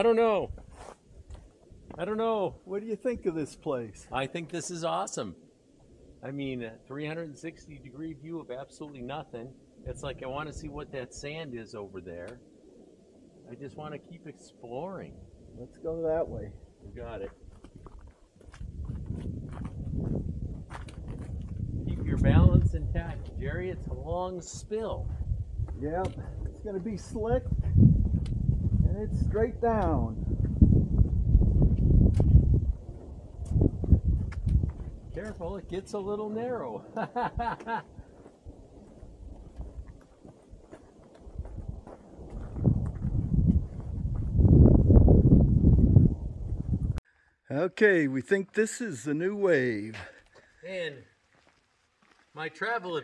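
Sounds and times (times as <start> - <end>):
shoes scuffing on sandstone: 0.6 - 1.4
footsteps scuffing on rock: 17.5 - 21.6, 38.2 - 44.3, 51.3 - 52.4
low microphone rumble: 18.6 - 36.0, 41.2 - 47.0.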